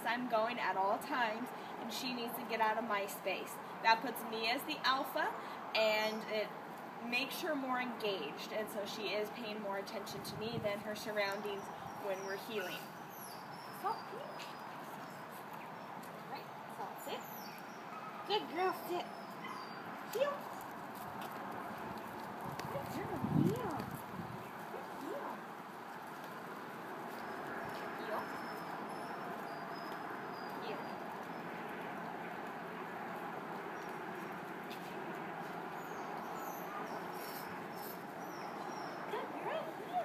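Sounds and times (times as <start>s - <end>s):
outdoor noise haze: 0.0s - 40.0s.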